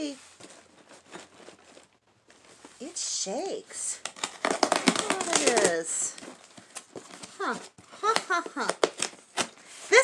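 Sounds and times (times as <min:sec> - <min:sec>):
packaging crinkling: 0:04.0 - 0:09.7.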